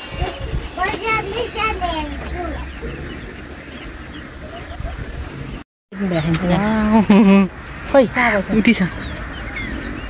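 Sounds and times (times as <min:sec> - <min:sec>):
children calling and chattering: 0:00.0 - 0:05.3, 0:06.0 - 0:10.0.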